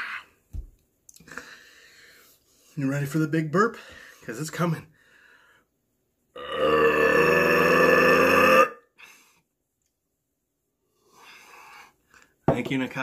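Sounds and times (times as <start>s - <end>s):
man burping: 6.4s - 8.9s.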